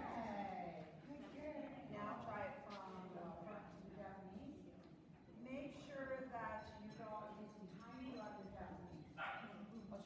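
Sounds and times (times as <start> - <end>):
small dog barking: 9.2 - 9.6.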